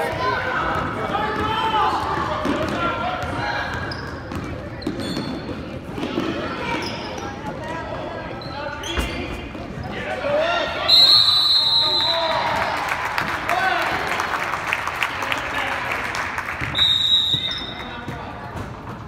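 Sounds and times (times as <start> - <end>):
referee's whistle: 10.8 - 12.5, 16.7 - 17.9.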